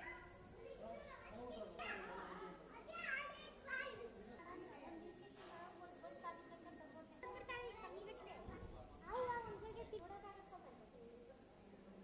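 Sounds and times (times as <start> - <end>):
children's voices: 0.0 - 4.2.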